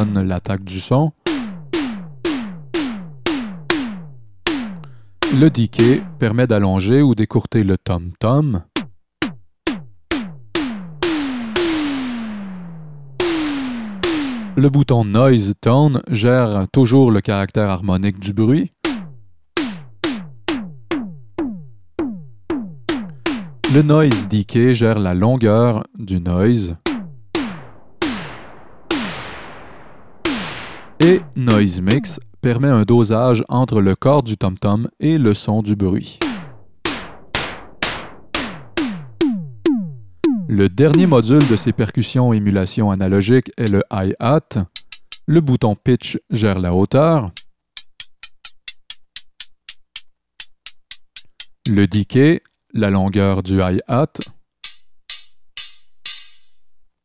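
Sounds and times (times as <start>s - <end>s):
synth tom-tom hits: 1.2s - 6.2s, 8.7s - 14.8s, 18.8s - 24.6s, 26.8s - 32.3s, 36.2s - 42.2s.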